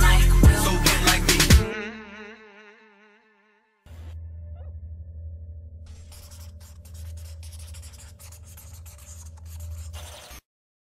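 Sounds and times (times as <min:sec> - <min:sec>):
low bass tone: 0:03.9 - 0:05.9
scratchy crackling noise: 0:05.9 - 0:10.4.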